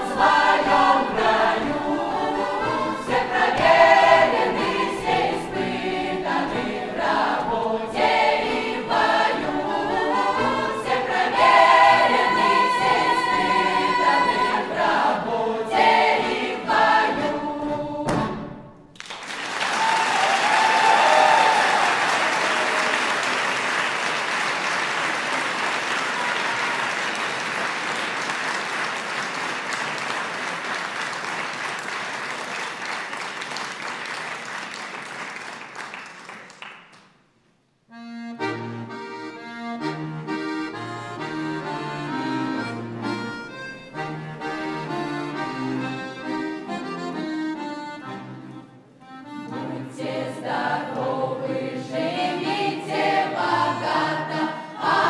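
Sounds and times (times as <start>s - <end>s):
folk choir singing: 0.0s - 18.8s, 49.2s - 55.0s
audience applauding: 19.0s - 37.2s
instrumental ensemble: 37.9s - 51.2s.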